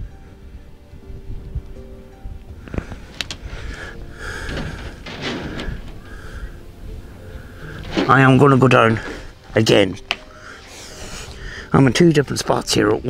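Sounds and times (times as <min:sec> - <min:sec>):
camera scraping and rustling: 0:02.7 - 0:11.4.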